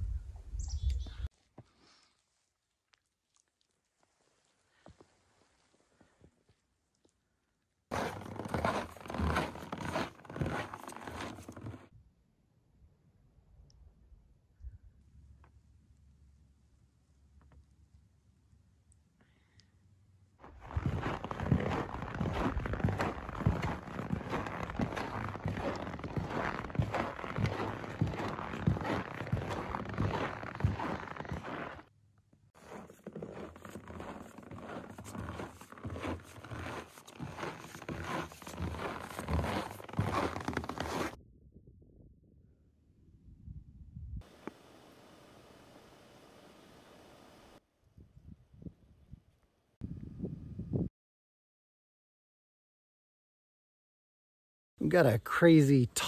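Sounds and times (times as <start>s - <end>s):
footsteps crunching in snow: 7.9s - 11.9s, 20.4s - 31.8s, 32.6s - 41.2s
faint steady hiss: 44.2s - 47.6s.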